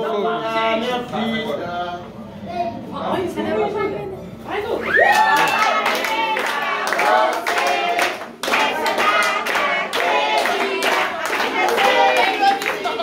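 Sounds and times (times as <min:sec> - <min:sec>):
people clapping in rhythm: 0:05.1 - 0:13.0
group singing: 0:05.6 - 0:13.0.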